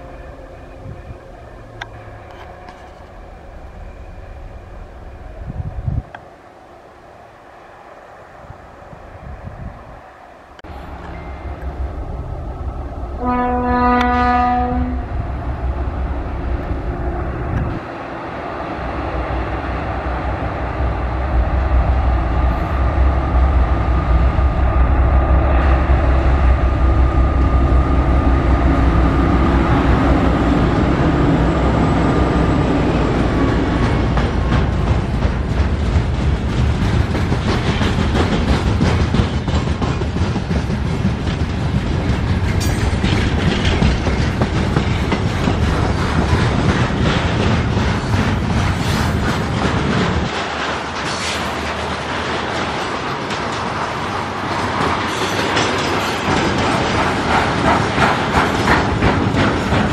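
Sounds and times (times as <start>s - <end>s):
locomotive horn blast: 13.2s - 15.2s
train wheels clicking over rail joints: 26.2s - 59.9s.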